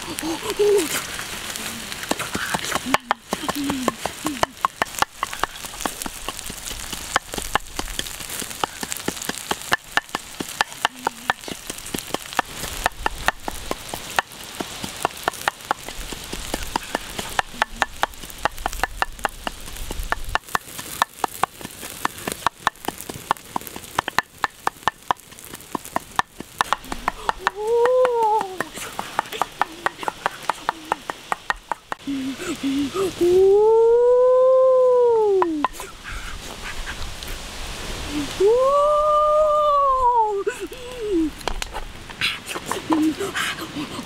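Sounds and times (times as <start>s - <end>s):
pops and crackles: 0.0s - 32.8s, 35.2s - 37.4s, 40.4s - 43.2s
shrimp sizzling on hot stone: 0.0s - 33.7s, 35.2s - 39.6s, 40.4s - 43.3s.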